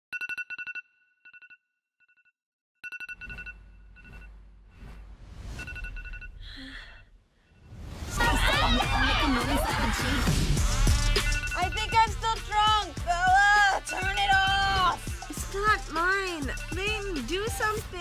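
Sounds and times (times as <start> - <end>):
phone alarm beeping: 2.8 - 4.4, 5.6 - 6.4, 11.2 - 12.8, 15.1 - 17.7.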